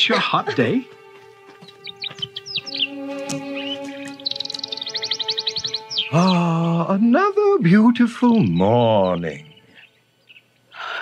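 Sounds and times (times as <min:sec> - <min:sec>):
soft music of held chords: 0:00.0 - 0:09.8
bird chirps: 0:01.4 - 0:07.4, 0:08.1 - 0:10.8
fast high bird trill: 0:01.6 - 0:07.0.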